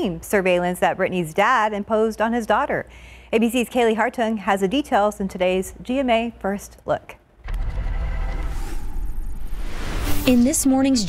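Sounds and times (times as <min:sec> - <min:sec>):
deep low rumble: 0:07.4 - 0:11.0
rising whoosh: 0:07.5 - 0:10.9
news intro music: 0:07.5 - 0:11.0.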